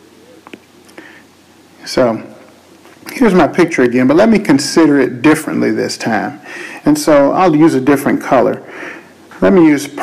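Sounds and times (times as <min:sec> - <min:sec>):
man breathing in: 0:00.9 - 0:01.3, 0:06.4 - 0:06.8, 0:08.6 - 0:09.2
man speaking: 0:01.8 - 0:02.4, 0:03.0 - 0:08.7, 0:09.4 - 0:10.0.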